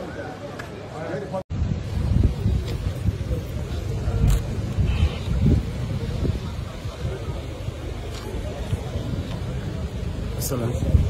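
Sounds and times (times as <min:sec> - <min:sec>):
wind rumble on microphone: 0:01.5 - 0:11.0.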